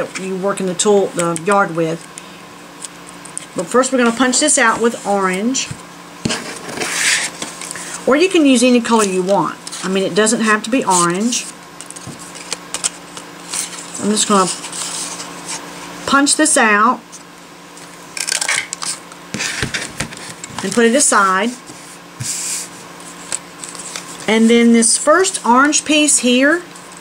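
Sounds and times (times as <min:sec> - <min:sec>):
cardstock rustling: 0:10.8 - 0:15.6, 0:18.3 - 0:24.5.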